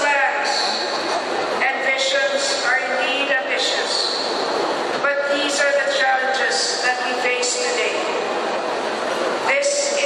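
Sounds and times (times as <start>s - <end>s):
woman speaking into a microphone: 0.0s - 1.0s, 1.6s - 4.2s, 5.0s - 8.3s, 9.4s - 10.0s
steady noise: 0.0s - 10.0s.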